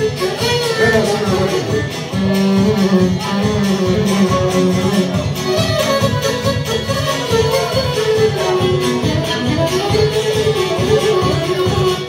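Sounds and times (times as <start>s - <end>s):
folk band playing: 0.0s - 12.0s.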